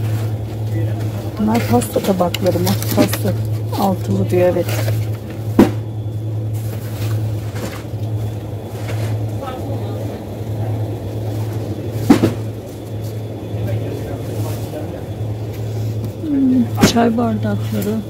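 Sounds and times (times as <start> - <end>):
low background hum: 0.0 - 18.0.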